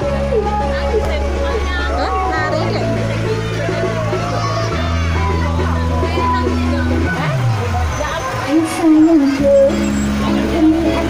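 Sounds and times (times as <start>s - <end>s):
loud music from speakers: 0.0s - 11.0s.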